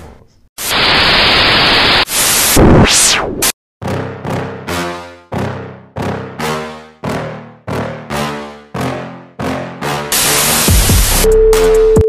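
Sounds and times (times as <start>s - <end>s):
white noise burst: 0.6s - 3.5s, 10.1s - 11.3s.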